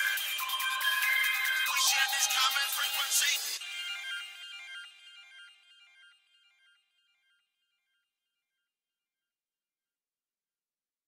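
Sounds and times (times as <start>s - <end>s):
faint electronic music: 0.0s - 4.6s.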